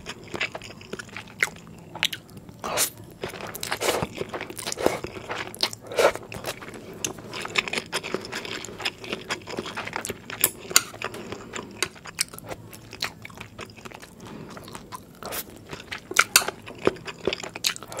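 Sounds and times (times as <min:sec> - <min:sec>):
person chewing noodles: 0:00.0 - 0:18.0.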